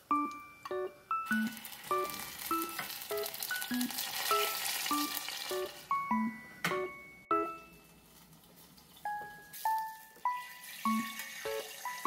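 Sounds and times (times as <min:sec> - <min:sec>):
background piano music: 0:00.0 - 0:12.0
sauce sizzling in a saucepan: 0:01.4 - 0:05.8, 0:10.5 - 0:12.0.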